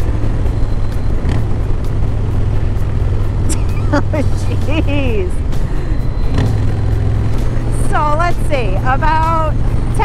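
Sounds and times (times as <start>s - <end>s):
motorcycle engine drone: 0.0s - 10.0s.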